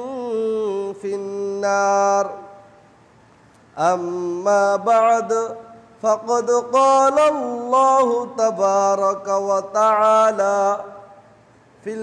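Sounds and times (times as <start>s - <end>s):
man chanting in long held notes: 0.0s - 2.7s, 3.8s - 11.2s.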